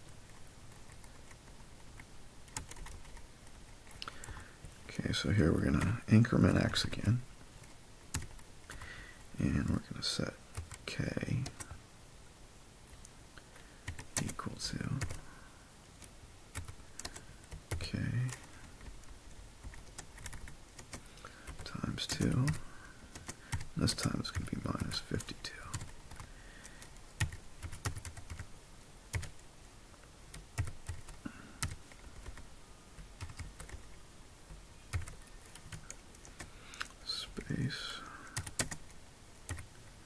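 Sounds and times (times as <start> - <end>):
keyboard typing: 0.3 - 4.8, 7.6 - 8.9, 10.5 - 11.7, 13.8 - 15.2, 16.0 - 28.5, 29.1 - 29.4, 30.3 - 32.4, 33.2 - 33.9, 34.9 - 37.6, 38.4 - 39.7.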